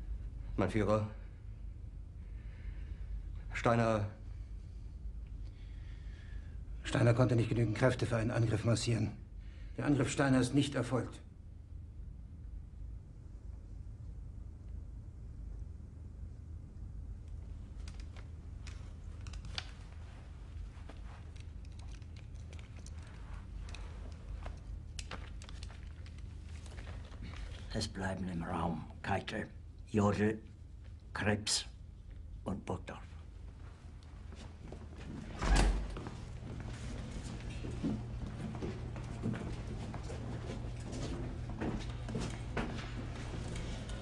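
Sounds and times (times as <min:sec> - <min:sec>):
steady low hum: 0:00.0 - 0:44.0
footsteps of boots on hard floor: 0:34.3 - 0:44.0.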